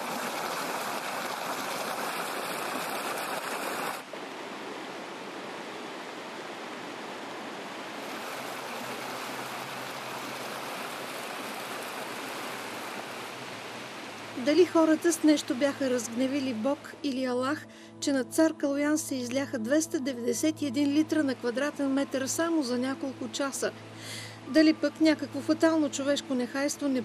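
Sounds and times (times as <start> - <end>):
floodwater rushing: 0.0 - 16.9.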